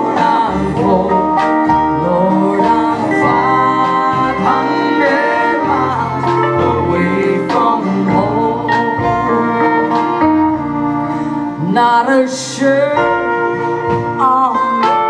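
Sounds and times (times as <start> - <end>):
woman singing: 0.0 - 9.2, 11.6 - 15.0
country-folk band playing: 0.0 - 15.0.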